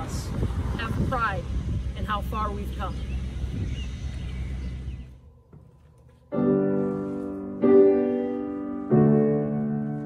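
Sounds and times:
wind rumble on microphone: 0.0s - 5.3s.

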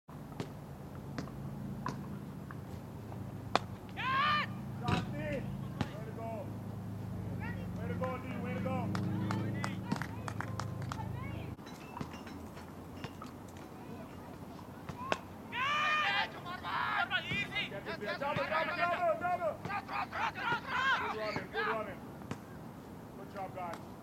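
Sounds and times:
players shouting: 3.9s - 6.6s, 7.2s - 11.6s, 13.8s - 22.0s.

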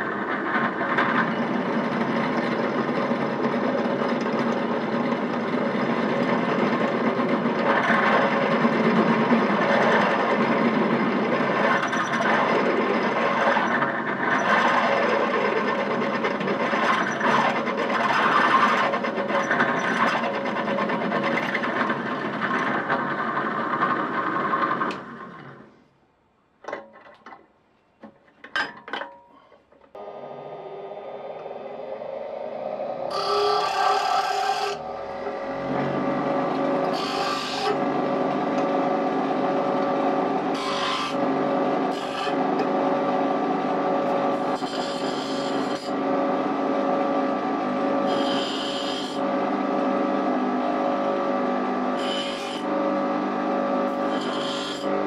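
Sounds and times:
metal grinding on wheel: 1.0s - 24.9s, 33.1s - 46.0s, 53.9s - 55.0s
drill press cutting copper: 33.1s - 46.3s, 47.8s - 49.4s, 51.9s - 52.9s, 53.8s - 55.0s
bench grinder humming: 33.1s - 55.0s.

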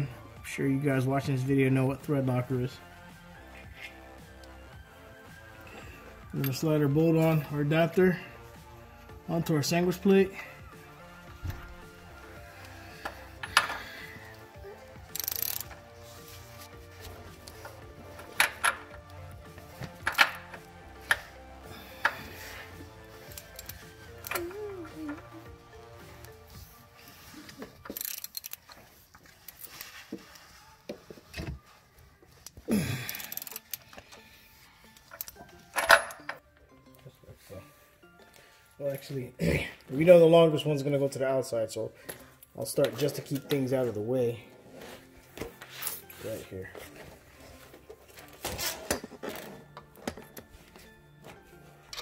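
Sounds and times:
background music: 0.0s - 52.0s
metal clinks of socket ratchet: 15.1s - 15.7s, 23.3s - 24.4s, 27.9s - 28.7s, 33.1s - 33.9s.

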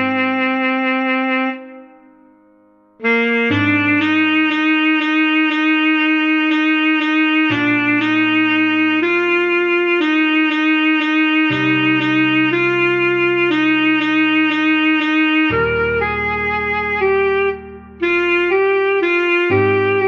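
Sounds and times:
alto saxophone melody: 0.0s - 2.2s, 3.0s - 20.0s.

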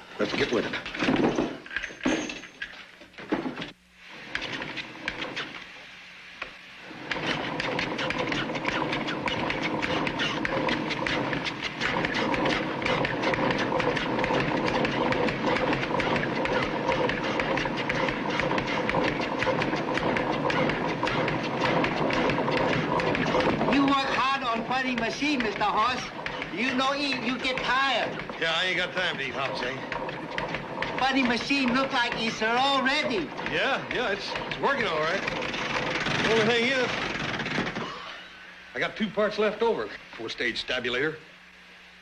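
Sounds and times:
constant hum: 0.0s - 42.0s
machine rapid clatter: 4.3s - 5.6s, 6.9s - 38.0s.

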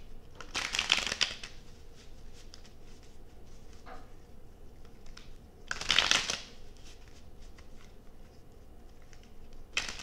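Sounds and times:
cards being shuffled: 0.4s - 3.8s, 4.8s - 10.0s.

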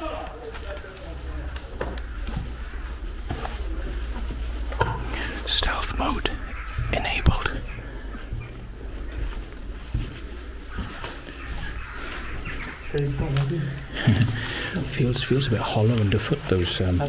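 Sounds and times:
hushed whispering voices: 0.1s - 9.3s.

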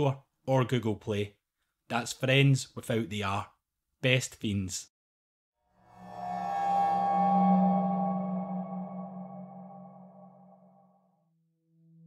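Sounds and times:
ambient music drone: 5.7s - 11.0s
low drone: 5.8s - 11.0s.

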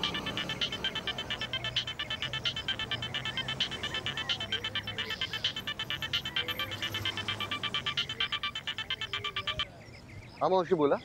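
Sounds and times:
phone ringtone beeps: 0.0s - 10.5s.

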